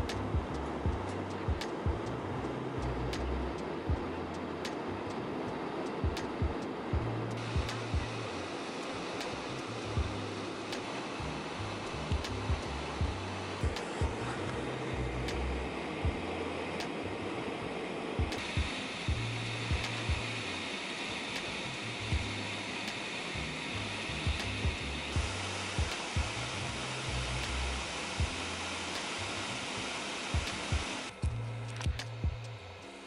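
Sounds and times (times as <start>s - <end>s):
light clicking percussion: 0.0s - 17.2s, 18.2s - 29.4s, 30.3s - 33.0s
jet airliner cabin rushing noise: 0.0s - 31.2s
background music with low bass: 0.0s - 33.0s.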